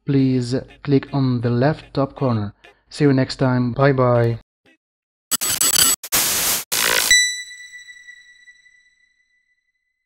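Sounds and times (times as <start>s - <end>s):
bursts of static noise: 5.3s - 7.1s
bright ringing tone: 7.1s - 9.4s.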